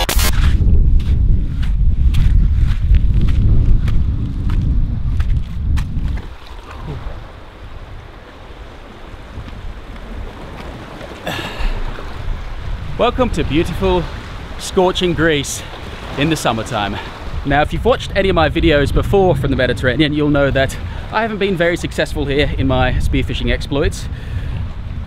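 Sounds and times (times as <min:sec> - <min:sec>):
wind buffeting the microphone: 0:00.0 - 0:25.0
sea surf on rocky shore: 0:06.1 - 0:25.0.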